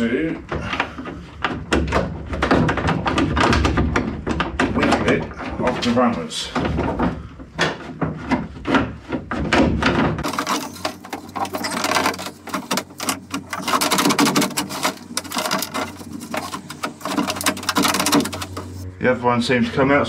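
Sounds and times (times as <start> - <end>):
metal clicks and rattles: 9.8 - 18.8.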